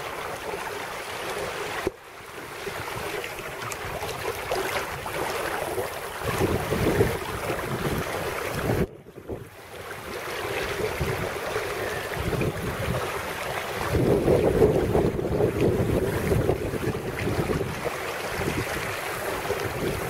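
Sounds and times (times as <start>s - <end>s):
water splashing along a hull: 0.0s - 20.0s
wind buffeting microphone: 2.7s - 20.0s.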